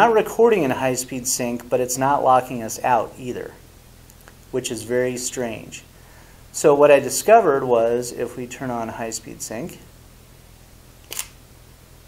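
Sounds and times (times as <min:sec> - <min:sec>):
camera shutter click: 0:11.0 - 0:11.4.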